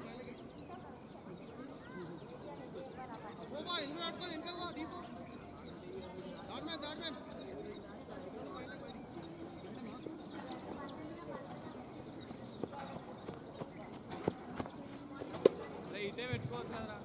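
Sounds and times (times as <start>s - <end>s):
distant voices: 0.2s - 17.0s.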